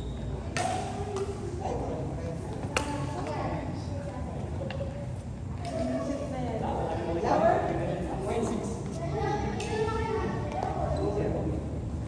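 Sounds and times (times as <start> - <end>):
racket hitting shuttlecock: 0.5 - 1.4.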